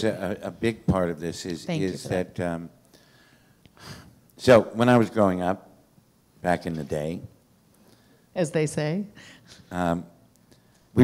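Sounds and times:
man speaking: 0:00.0 - 0:02.8, 0:04.4 - 0:05.7, 0:06.4 - 0:07.4, 0:09.6 - 0:10.2
breath into microphone: 0:02.9 - 0:04.1.

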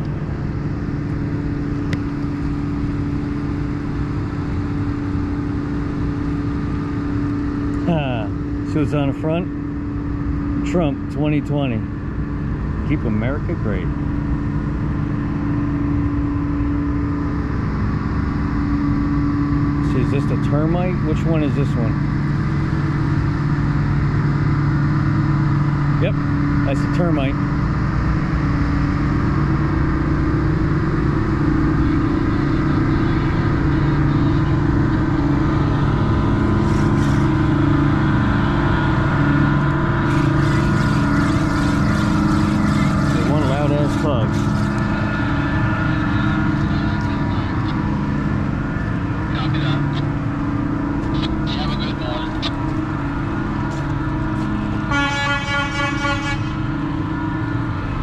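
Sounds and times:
tugboat diesel engines droning: 0:00.0 - 0:58.0
short horn tone: 0:54.9 - 0:56.7.

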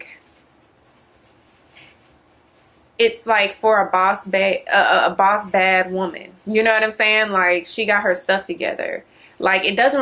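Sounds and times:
soft rustle: 0:00.0 - 0:07.6
faint room hiss: 0:00.0 - 0:10.0.

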